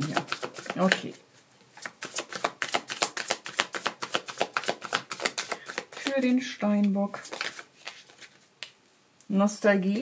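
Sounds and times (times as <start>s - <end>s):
cards being shuffled: 0.0s - 8.8s.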